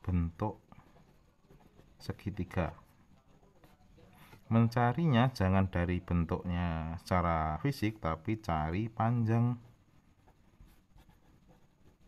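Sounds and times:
marker scratching on paper: 0.0s - 4.5s, 10.1s - 12.0s.

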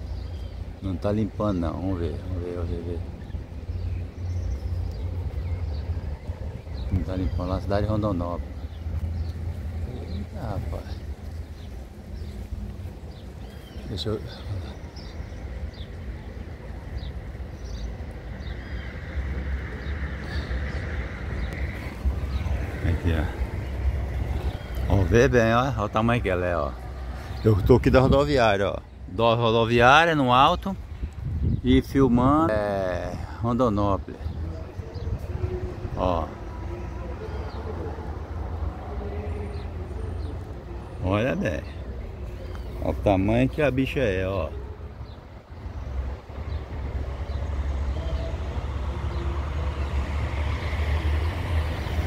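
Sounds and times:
vehicle engine drone: 0.0s - 29.2s, 32.0s - 52.0s
distant traffic rumble: 0.0s - 52.0s.

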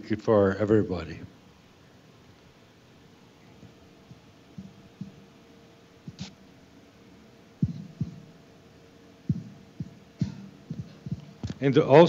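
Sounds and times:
faint room hum: 0.0s - 12.0s
soft low thumps: 3.6s - 5.2s, 7.6s - 8.2s, 9.3s - 11.6s.

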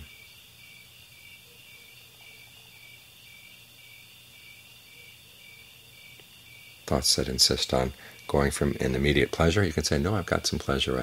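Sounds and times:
crickets chirping: 0.0s - 11.0s.

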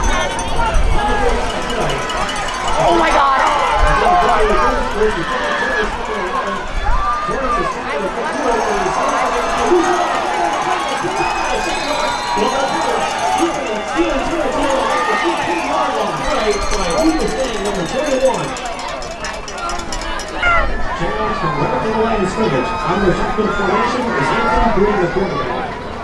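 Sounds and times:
crowd cheering and shouting: 0.0s - 26.0s.

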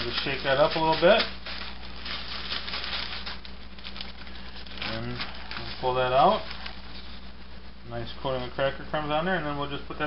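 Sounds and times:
plastic bag crinkling and rustling: 0.0s - 7.4s
steady low hum: 0.0s - 10.0s.

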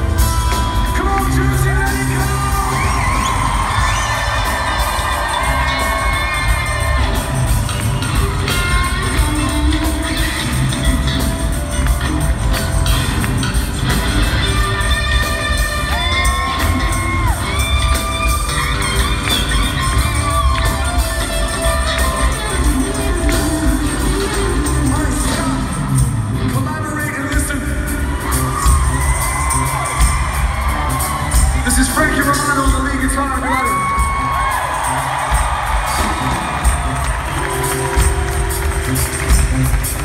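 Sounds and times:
crowd cheering: 0.0s - 40.0s
live rock band playing: 0.0s - 40.0s.

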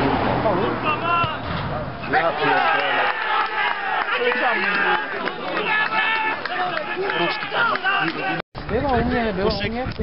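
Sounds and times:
men calling out: 0.6s - 8.4s.

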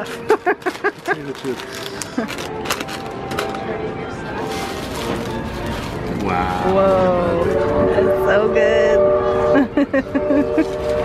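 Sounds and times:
paper wrapping crinkling: 0.0s - 3.5s, 4.4s - 7.0s
laughter: 0.2s - 1.4s, 9.6s - 10.8s.

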